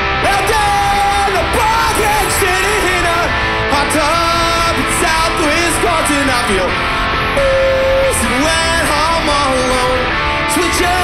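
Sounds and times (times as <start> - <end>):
punk rock band playing live: 0.0 - 11.0
yelled vocals: 0.0 - 11.0.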